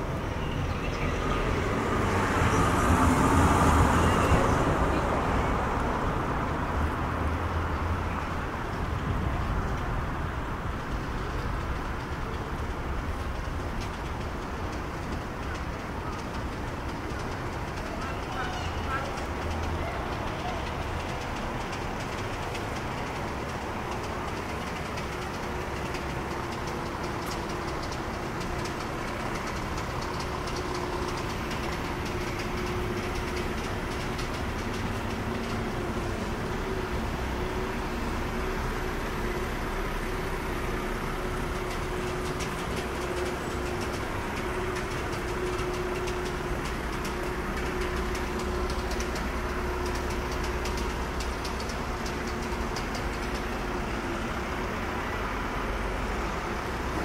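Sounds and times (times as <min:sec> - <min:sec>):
distant traffic rumble: 0:00.0 - 0:57.0.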